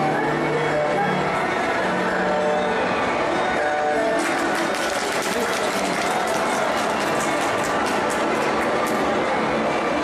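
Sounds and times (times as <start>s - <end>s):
audience applause: 4.0s - 9.1s.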